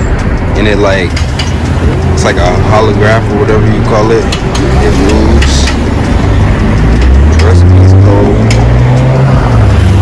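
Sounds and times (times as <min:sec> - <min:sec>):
vehicle engine droning: 0:00.0 - 0:10.0.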